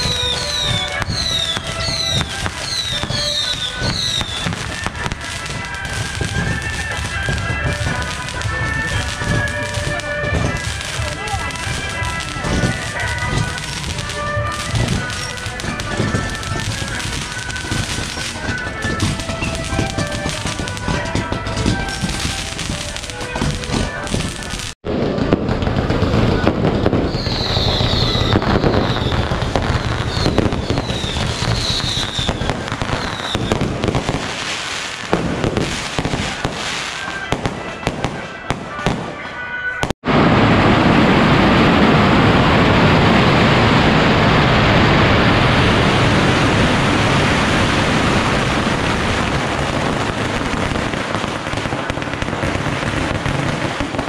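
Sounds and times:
firework whistles: 0.0s - 24.8s, 26.0s - 39.9s
firecrackers crackling: 0.0s - 54.0s.

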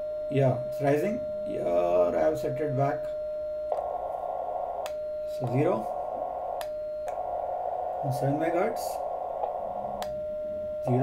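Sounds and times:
short steady sidetone beep: 0.0s - 11.0s
radio receiver hiss: 3.7s - 11.0s.

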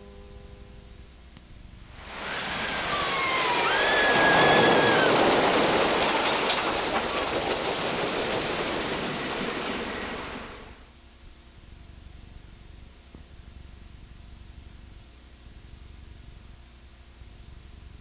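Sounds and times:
high squeals: 2.0s - 10.7s
roller coaster train rumbling: 2.0s - 10.8s.

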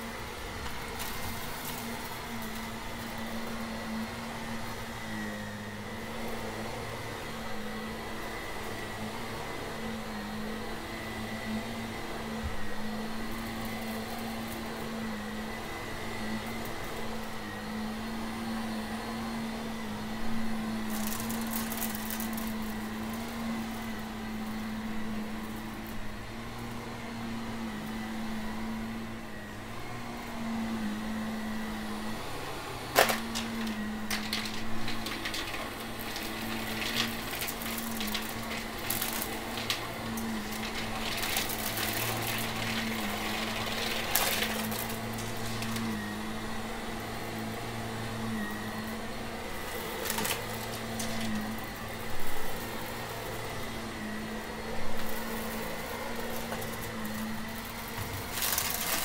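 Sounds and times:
vacuum cleaner running on carpet: 0.0s - 59.0s
debris crackling up vacuum nozzle: 20.8s - 24.0s, 32.9s - 46.6s, 48.8s - 54.1s, 54.9s - 59.0s.

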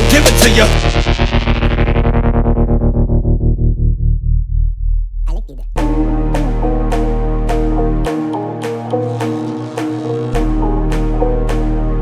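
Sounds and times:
electronic hip-hop music: 0.0s - 4.0s, 5.3s - 12.0s.

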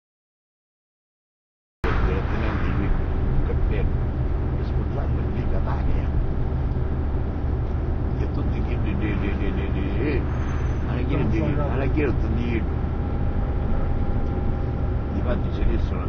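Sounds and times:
car rumble while driving: 1.8s - 16.0s
muffled men talking: 1.9s - 3.9s, 4.5s - 6.2s, 8.1s - 12.7s, 15.1s - 16.0s.

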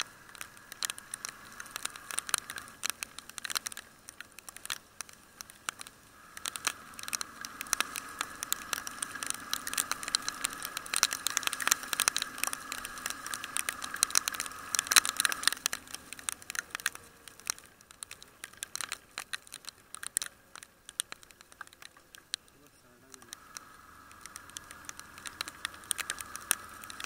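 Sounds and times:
motorcycle drone: 0.0s - 27.0s
raindrops ticking on camera: 0.0s - 27.0s.

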